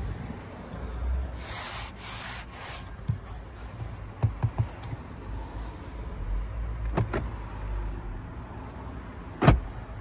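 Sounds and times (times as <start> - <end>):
hand rubbing textured plastic: 1.4 - 5.0.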